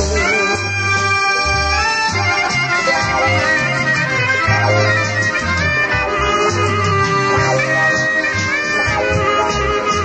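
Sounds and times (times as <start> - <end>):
reed instrument melody: 0.0 - 10.0
stepping bass line: 1.6 - 10.0.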